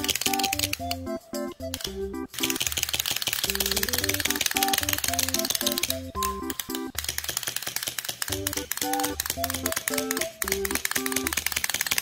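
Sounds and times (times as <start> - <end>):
clockwork toy ticking clatter: 0.0 - 12.0
bouncy music with plucked bass: 3.6 - 6.8.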